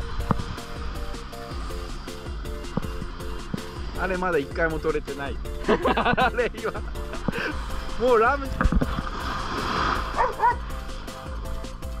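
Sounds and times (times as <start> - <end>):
background music: 0.0 - 12.0
short dog barks: 10.2 - 10.6.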